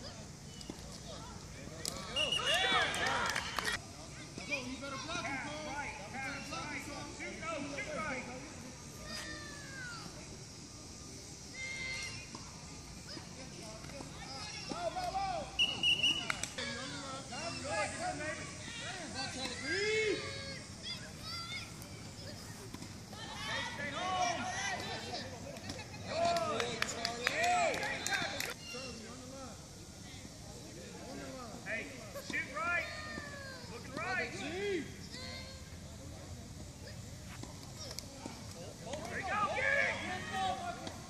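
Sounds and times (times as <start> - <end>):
distant shouts and chatter: 0.0 - 41.0.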